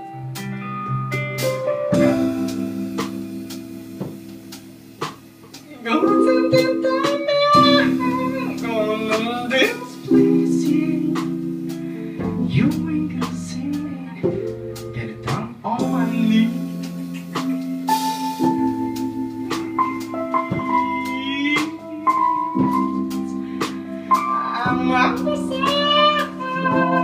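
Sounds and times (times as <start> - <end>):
electric guitar chords: 0.0 - 27.0
live band playing soul-jazz: 0.0 - 27.0
wavering lead melody: 0.0 - 27.0.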